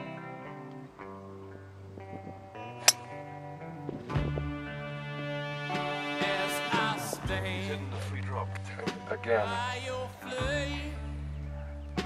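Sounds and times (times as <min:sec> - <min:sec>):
acoustic guitar music: 0:00.0 - 0:12.0
golf club striking ball: 0:02.8 - 0:03.2.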